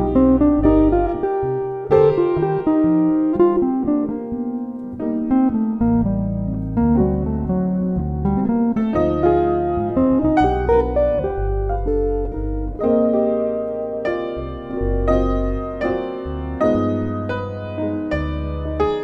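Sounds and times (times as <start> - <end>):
jazz ballad: 0.0 - 19.0
low electric bass notes: 0.0 - 19.0.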